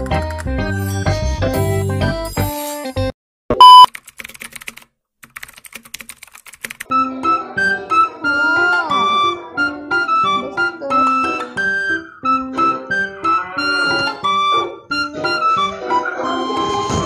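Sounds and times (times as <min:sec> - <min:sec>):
short loud beep: 0:03.5 - 0:03.9
background music: 0:06.9 - 0:17.0.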